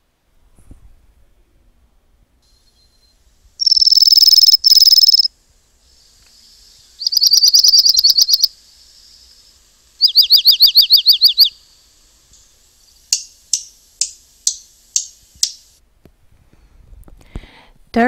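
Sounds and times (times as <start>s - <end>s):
bird singing trills: 3.6s - 5.3s, 6.9s - 9.3s, 10.0s - 11.6s.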